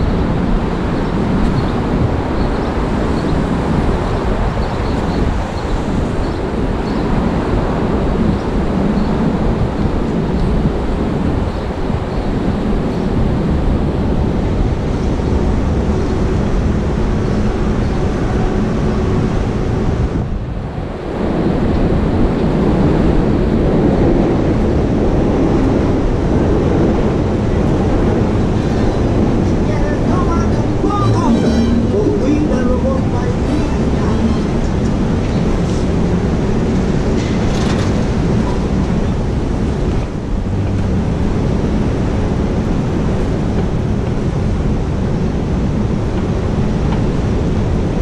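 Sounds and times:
rumble of passing vehicles: 0:00.0 - 0:48.0
wind on microphone: 0:00.0 - 0:48.0.

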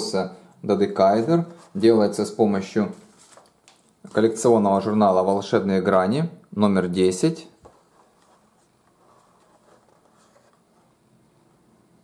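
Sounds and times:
paper model rustling: 0:01.0 - 0:04.5, 0:07.6 - 0:11.0.

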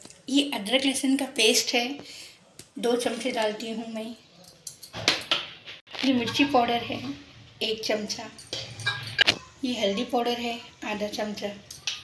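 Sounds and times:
metal spoon scraping pot: 0:06.0 - 0:07.3, 0:08.3 - 0:10.1.

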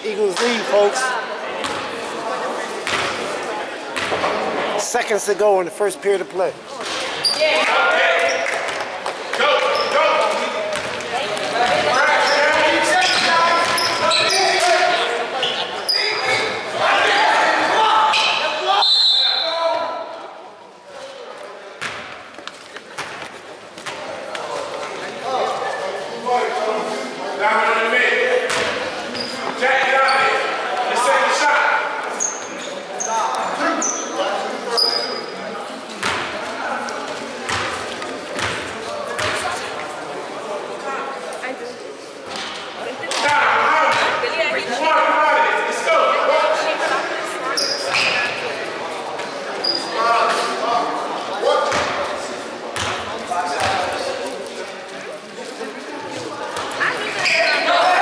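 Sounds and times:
sneakers squeaking: 0:06.7 - 0:08.9, 0:09.6 - 0:16.8, 0:21.8 - 0:25.8, 0:28.5 - 0:30.5, 0:32.0 - 0:35.4, 0:37.1 - 0:39.8, 0:47.4 - 0:48.5, 0:49.2 - 0:50.1, 0:52.8 - 0:54.1, 0:56.0 - 0:57.9.

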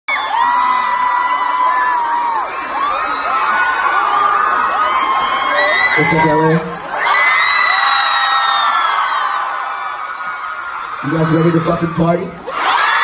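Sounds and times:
crowd screaming and cheering: 0:00.1 - 0:13.0.

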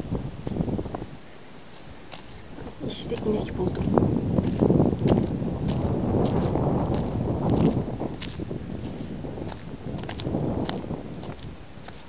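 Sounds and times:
wind buffeting microphone: 0:00.0 - 0:12.0
footsteps on stony ground: 0:00.3 - 0:12.0.

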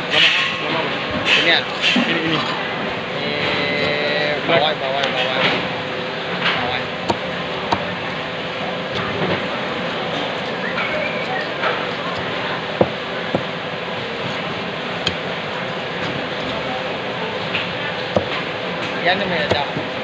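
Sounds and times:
market chatter: 0:00.0 - 0:20.0.

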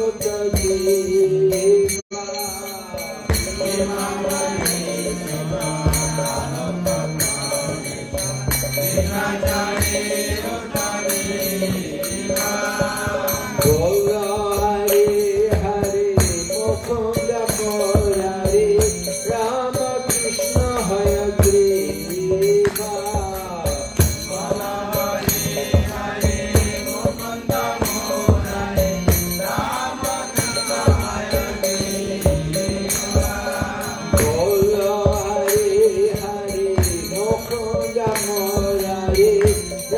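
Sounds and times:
hand cymbals: 0:00.0 - 0:39.9
person chanting a prayer: 0:00.0 - 0:39.9
steady percussion beat: 0:00.0 - 0:39.9.

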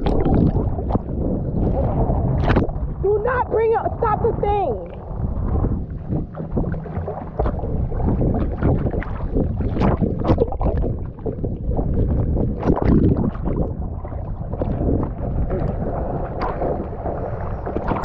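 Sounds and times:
sea water splashing: 0:00.0 - 0:18.0
wind buffeting microphone: 0:00.0 - 0:18.0.

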